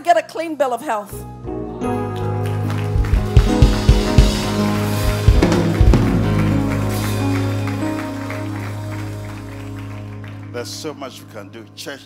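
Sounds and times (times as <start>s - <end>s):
worship band playing softly: 1.3s - 12.0s
drum kit hits: 3.0s - 7.8s.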